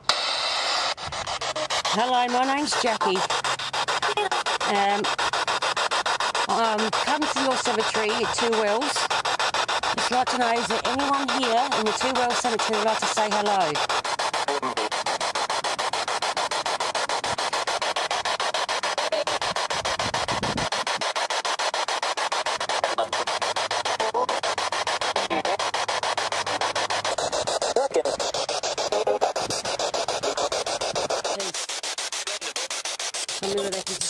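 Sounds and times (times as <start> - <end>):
radio static pulsing: 0.0 - 34.0
garbled voice snatches: 0.9 - 34.0.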